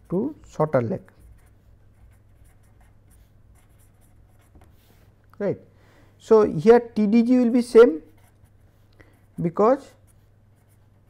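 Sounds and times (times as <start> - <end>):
pen scratching on paper: 0.0 - 5.1, 7.4 - 11.0.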